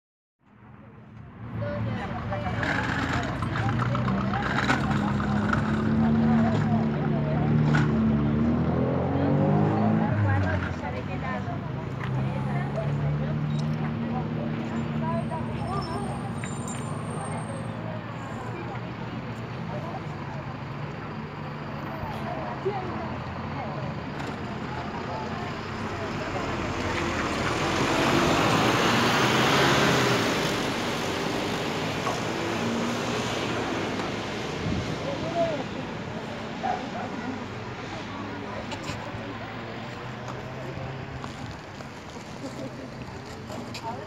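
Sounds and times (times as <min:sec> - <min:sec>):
street noise: 0:00.4 - 0:44.0
people talking: 0:00.8 - 0:44.0
background voices: 0:01.6 - 0:44.0.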